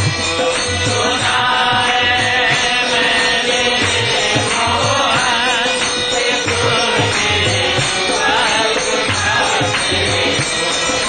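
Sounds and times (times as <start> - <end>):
voices chanting: 0.6 - 11.0.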